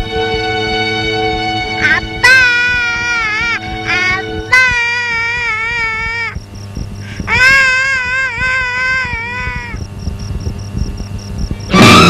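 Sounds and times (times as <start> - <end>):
film score music: 0.0 - 12.0
baby crying: 1.7 - 6.4, 7.1 - 9.9.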